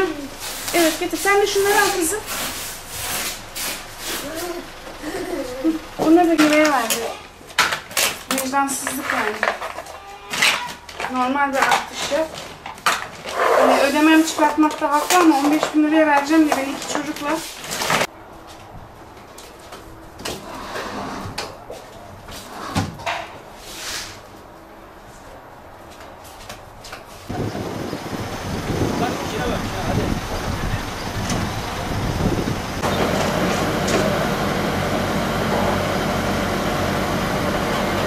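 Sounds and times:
plastic rustling: 0:00.0 - 0:04.6
small child vocalising: 0:04.2 - 0:05.8.

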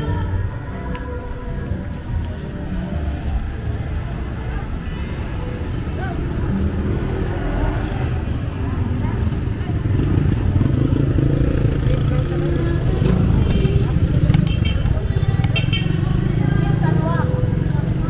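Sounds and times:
motorcycle engines rumbling: 0:00.0 - 0:18.0
sharp clicks: 0:14.2 - 0:14.8, 0:15.4 - 0:15.7.

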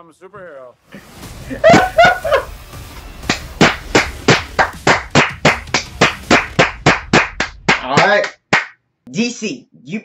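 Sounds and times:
rhythmic clapping: 0:03.2 - 0:08.8.

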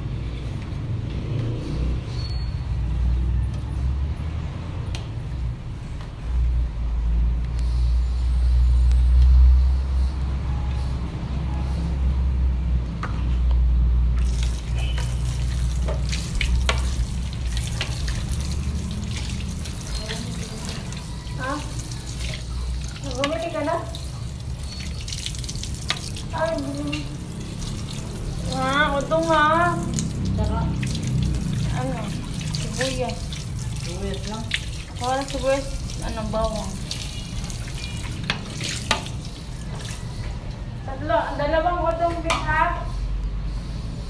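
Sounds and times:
plates being rinsed: 0:14.2 - 0:40.1
tap water running into sink: 0:14.2 - 0:40.1.

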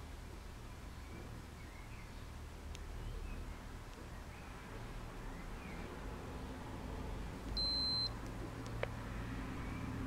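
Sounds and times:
blood pressure monitor beep: 0:07.6 - 0:08.2.

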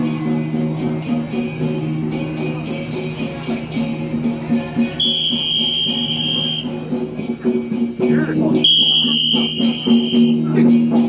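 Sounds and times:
high piercing held tone: 0:05.0 - 0:06.8.

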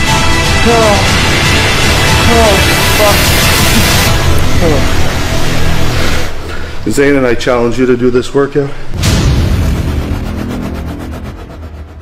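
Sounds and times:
deep cinematic boom rumble: 0:09.0 - 0:12.0.

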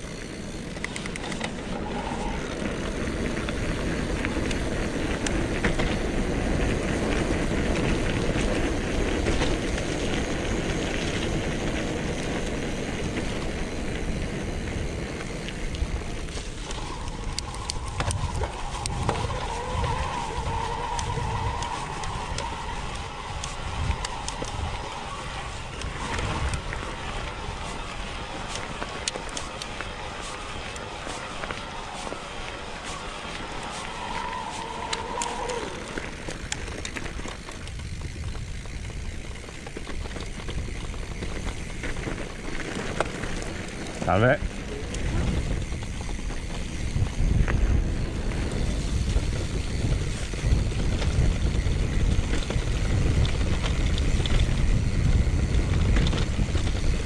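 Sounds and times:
bike rattles and clicks: 0:00.0 - 0:57.0
tyre and wind noise: 0:00.0 - 0:57.0.

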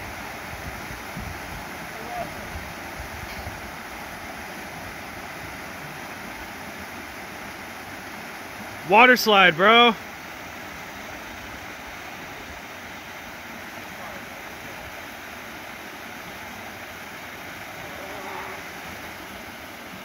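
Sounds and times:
waterfall pouring into a pool: 0:00.0 - 0:20.0.

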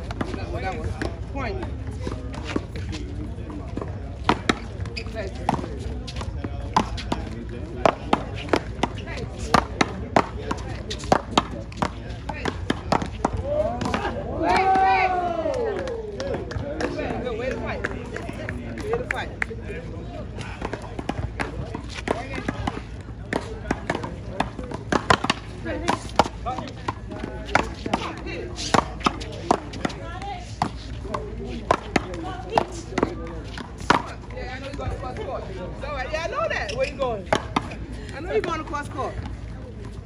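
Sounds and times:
players' voices: 0:00.0 - 0:40.0.

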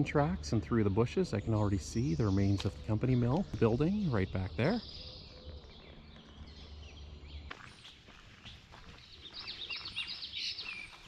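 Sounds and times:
songbirds chirping: 0:00.0 - 0:11.0.

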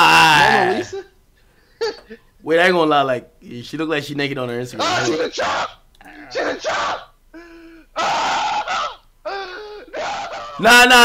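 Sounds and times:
man's held voiced sound: 0:04.7 - 0:07.0.

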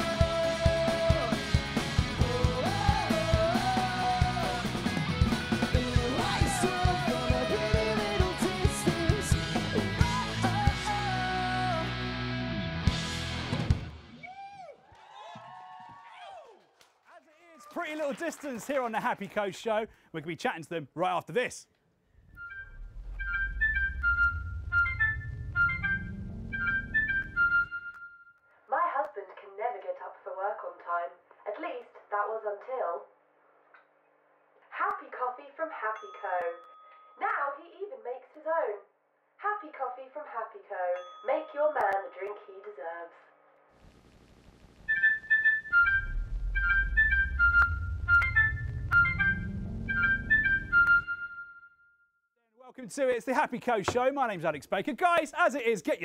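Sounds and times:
low hum rising in pitch: 0:22.4 - 0:27.7, 0:45.8 - 0:51.0.

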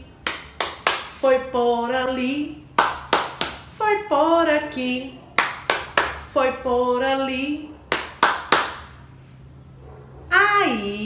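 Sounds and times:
faint low hum: 0:00.0 - 0:11.0
hand claps: 0:00.2 - 0:01.2, 0:02.8 - 0:03.6, 0:05.4 - 0:06.2, 0:07.9 - 0:09.0.

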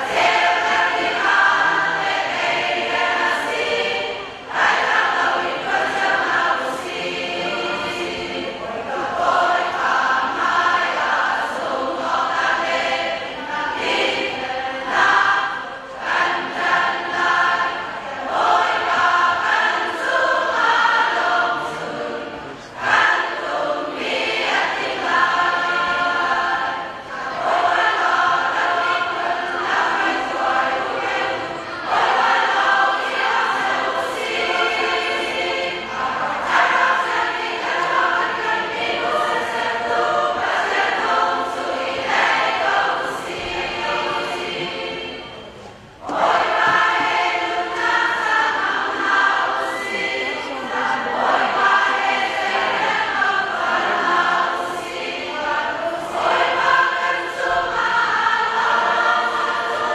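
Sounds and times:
large women's choir singing: 0:00.0 - 0:59.9.

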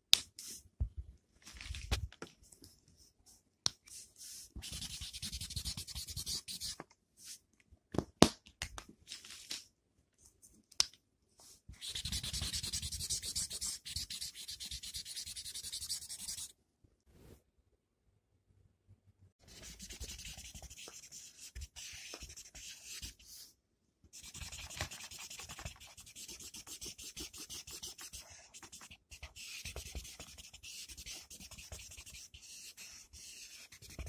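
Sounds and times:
felt-tip marker scratching on paper: 0:11.8 - 0:16.5, 0:19.5 - 0:23.2, 0:24.2 - 0:34.0.

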